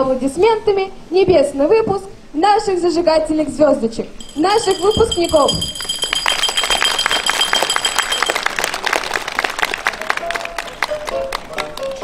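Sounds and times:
thin steady high whine: 4.2 - 8.6
crowd applauding: 5.7 - 12.0.

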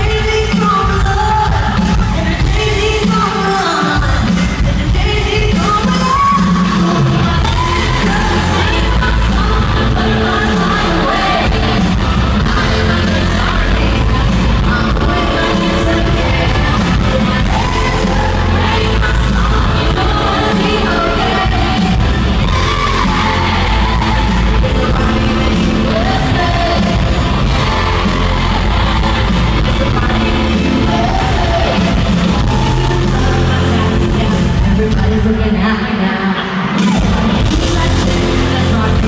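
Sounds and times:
lead vocal singing: 0.0 - 39.0
live pop music over speakers: 0.0 - 39.0
crowd yelling: 5.8 - 39.0
heavy bass beat: 7.3 - 35.1.

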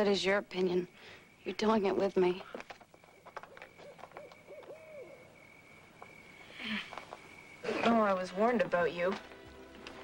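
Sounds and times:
owl hooting: 3.4 - 7.9.

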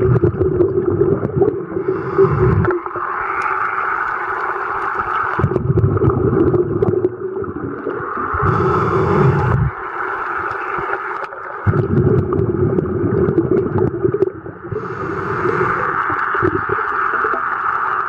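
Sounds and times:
muffled underwater rush: 0.0 - 18.0.

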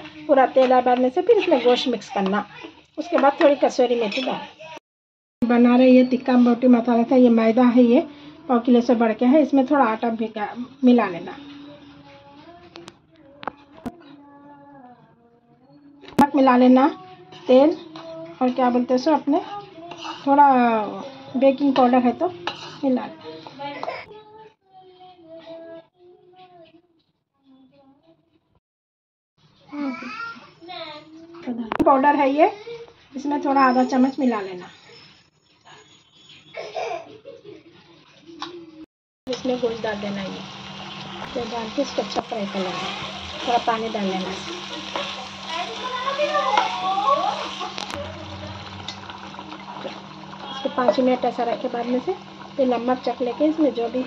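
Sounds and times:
faint person singing: 11.4 - 16.2, 16.8 - 18.4, 22.3 - 28.4
spatula stirring in pan: 17.1 - 23.8, 39.3 - 54.0
gravy bubbling and sizzling: 39.3 - 54.0.

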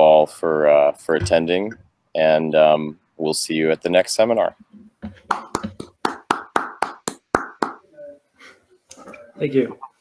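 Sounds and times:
person clapping hands: 5.2 - 7.8.

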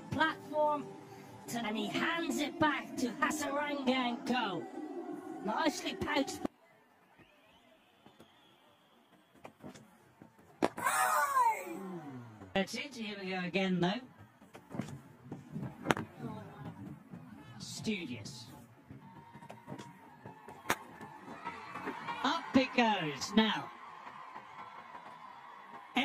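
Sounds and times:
stadium background noise: 0.0 - 26.0.

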